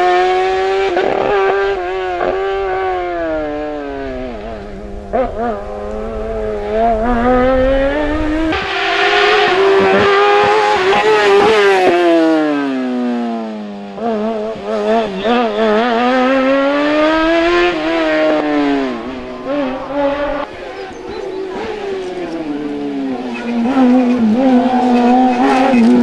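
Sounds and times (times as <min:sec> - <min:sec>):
race car engine revving: 0:00.0 - 0:26.0.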